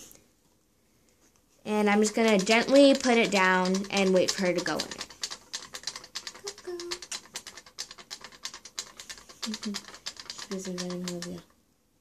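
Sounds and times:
rodent claws scrabbling: 1.8s - 11.5s.

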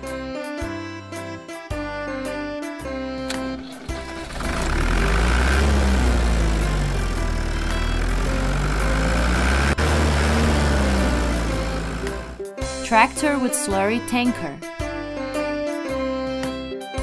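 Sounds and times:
tractor engine revving: 3.3s - 13.2s.

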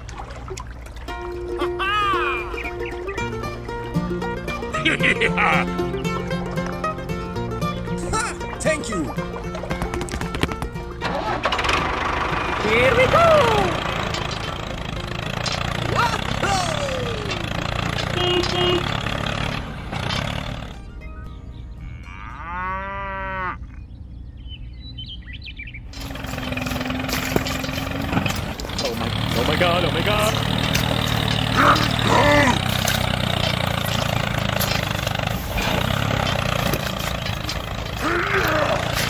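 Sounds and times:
toy tractor engine running: 11.0s - 20.8s, 25.9s - 39.0s.

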